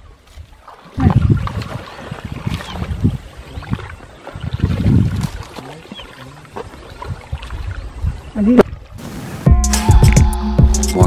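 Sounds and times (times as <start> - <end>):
feet splashing through muddy water: 0.0 - 9.2.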